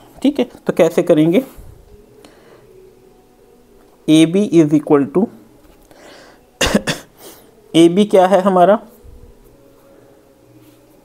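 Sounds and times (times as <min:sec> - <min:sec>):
man coughing: 0:06.6 - 0:07.2.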